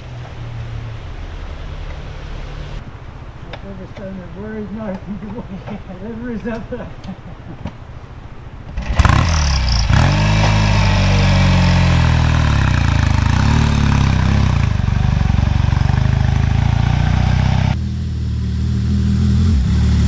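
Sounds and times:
motorcycle engine revving: 8.6 - 20.0.

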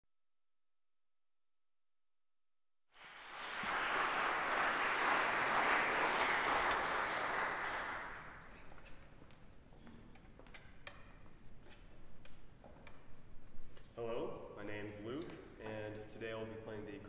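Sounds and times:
audience applauding: 3.0 - 8.6.

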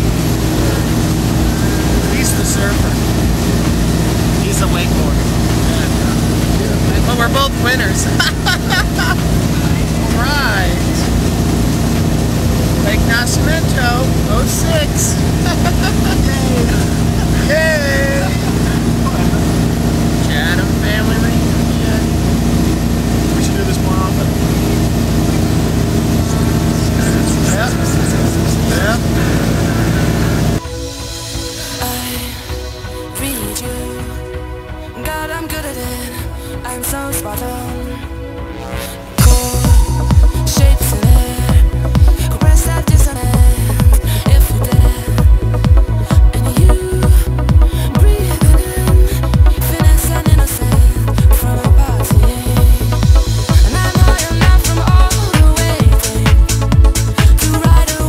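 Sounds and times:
men talking and laughing: 0.0 - 30.6
motorboat engine running: 0.0 - 58.0.

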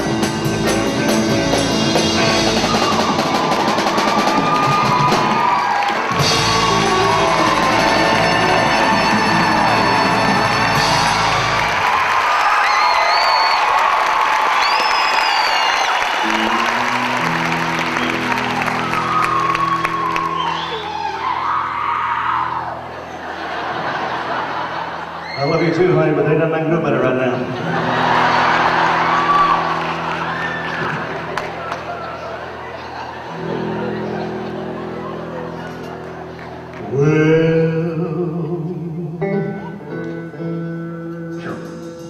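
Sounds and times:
live rock band playing: 0.0 - 12.7, 13.6 - 42.0
audience whooping and cheering: 2.1 - 26.1, 27.4 - 37.2.

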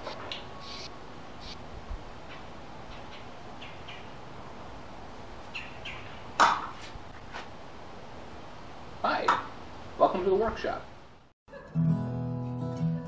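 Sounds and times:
small birds chirping: 0.0 - 1.6, 2.8 - 4.3, 5.4 - 6.4
steady background hum: 0.0 - 11.3.

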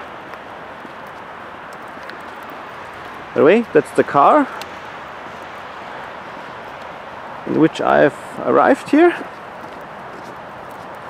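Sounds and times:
footsteps on pavement: 0.0 - 11.0
outdoor background noise: 0.0 - 11.0.

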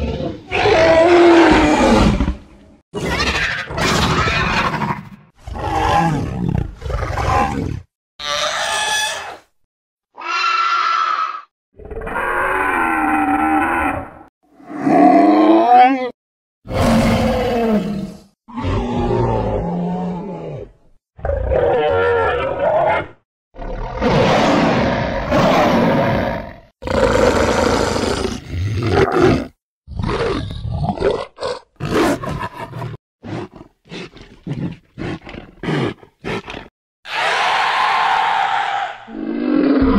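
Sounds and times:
cartoon creature growls and screeches: 0.0 - 2.4, 3.0 - 9.5, 10.2 - 39.9
cartoon dinosaur roars: 0.0 - 9.5, 10.2 - 34.2, 35.0 - 39.9.

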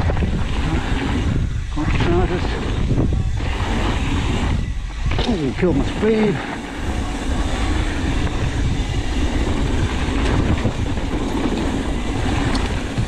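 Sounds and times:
bike rattling: 0.0 - 13.0
bike tyres rumbling on dirt: 0.0 - 13.0
wind buffeting microphone: 0.0 - 13.0.

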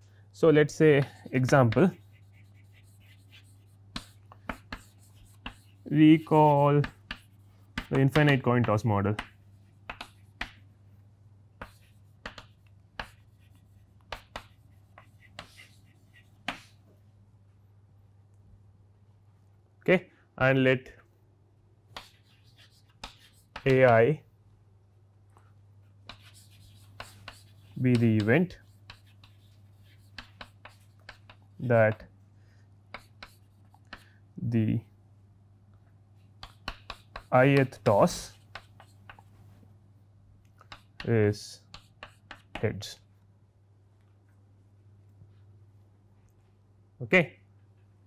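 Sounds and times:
chalk tapping on blackboard: 0.9 - 10.8, 11.6 - 16.8, 21.9 - 24.0, 26.0 - 32.1, 32.9 - 34.1, 36.3 - 39.3, 40.6 - 42.7.

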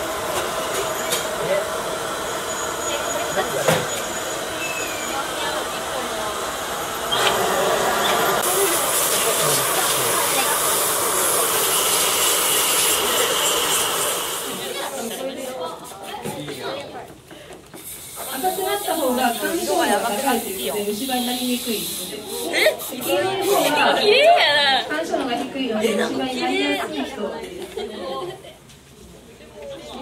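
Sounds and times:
hissing room noise: 0.0 - 15.7, 17.7 - 23.8.

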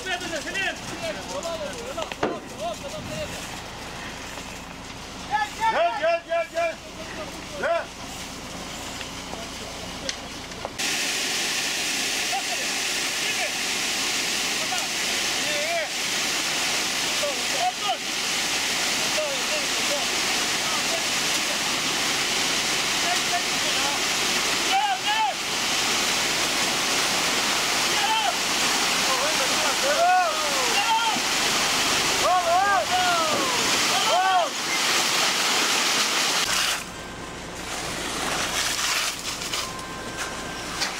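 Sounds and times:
wet concrete rushing down chute: 0.0 - 40.9.

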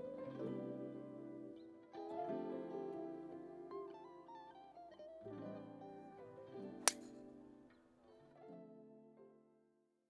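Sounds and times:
golf driver striking ball: 6.9 - 7.1.

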